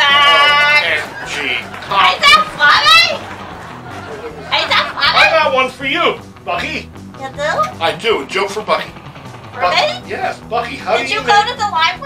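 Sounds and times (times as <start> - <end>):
excited chatter: 0.0 - 12.0.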